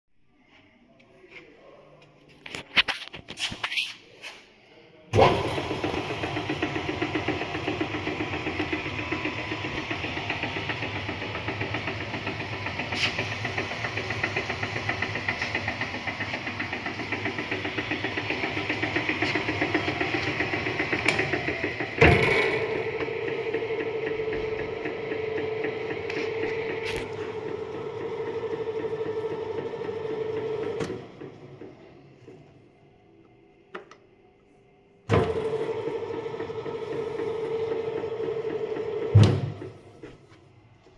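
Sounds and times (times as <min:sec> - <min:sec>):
dough mixer motor humming: 0:05.2 - 0:33.5, 0:35.1 - 0:40.9.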